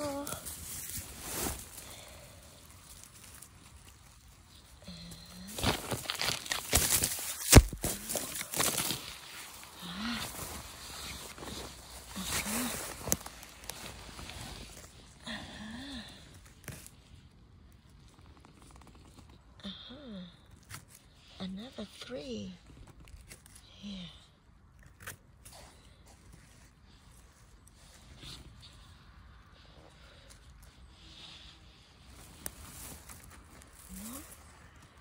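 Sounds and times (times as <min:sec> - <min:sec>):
person humming: 0:00.0 - 0:00.6
pine needles rustling and crunching: 0:00.0 - 0:19.4, 0:22.6 - 0:24.1, 0:24.7 - 0:35.0.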